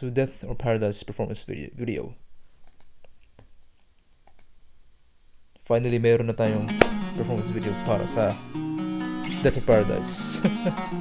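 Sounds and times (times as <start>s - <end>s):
computer mouse clicks: 2.6s - 4.5s.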